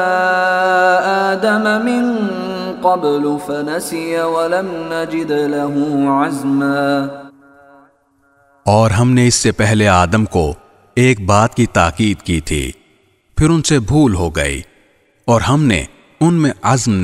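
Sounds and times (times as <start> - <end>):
man chanting recitation: 0.0 - 7.3, 8.7 - 12.8, 13.4 - 14.7, 15.3 - 17.0
person speaking: 8.7 - 12.8, 13.4 - 14.7, 15.3 - 17.0.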